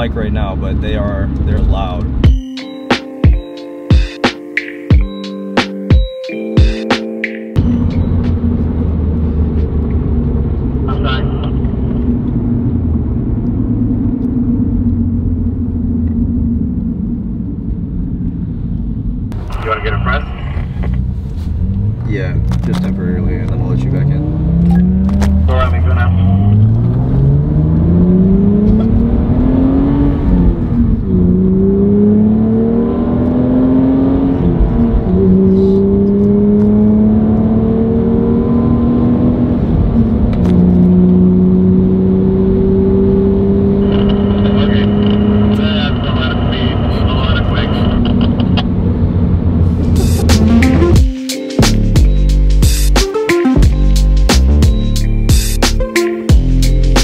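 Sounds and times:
car engine accelerating: 0.0 - 57.0.

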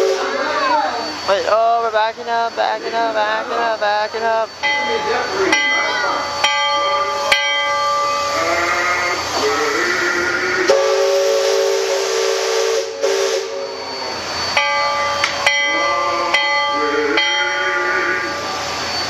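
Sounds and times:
hiss of steam: 0.0 - 15.5, 16.1 - 19.0
steam whistle chord: 10.6 - 16.4.

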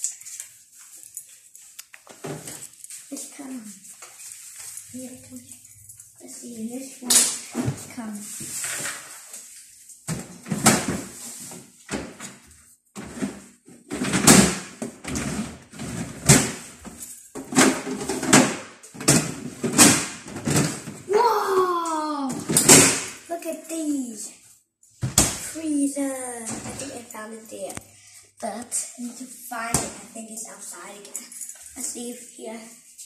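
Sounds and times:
plastic drawers opening and shutting: 13.0 - 16.8, 17.4 - 21.1
knocks and clatters: 13.0 - 21.1
child calling out: 21.1 - 22.5.

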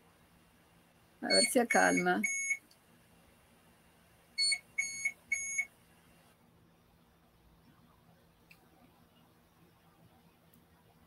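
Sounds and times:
high electronic beeps: 1.3 - 2.6.

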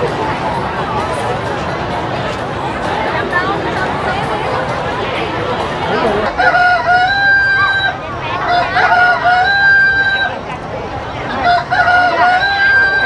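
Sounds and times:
crowd chatter: 0.0 - 13.0
rooster crowing: 8.5 - 10.3, 11.4 - 13.0.

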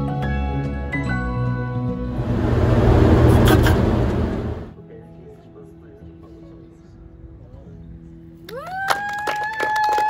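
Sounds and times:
group clapping: 8.5 - 10.0
high whoop: 8.5 - 10.0.

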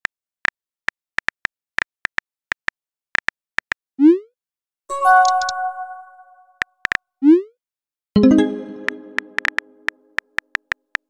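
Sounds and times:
bell-like chime: 4.9 - 6.5, 8.2 - 9.4.

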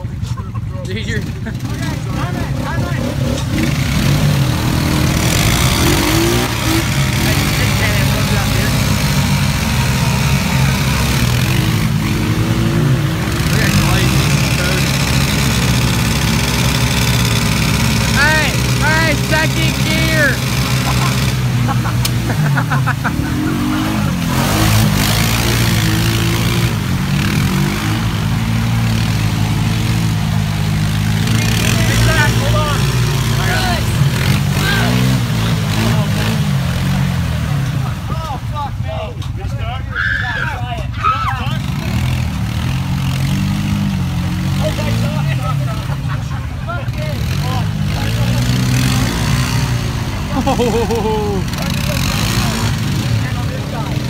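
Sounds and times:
atv engines revving: 0.0 - 54.0.

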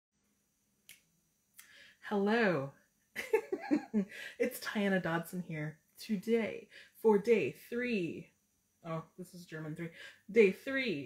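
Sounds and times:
faint finger snaps: 0.8 - 1.8.

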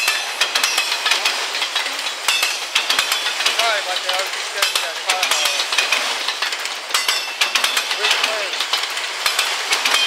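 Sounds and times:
freight car wheels clicking on rails: 0.0 - 10.0.

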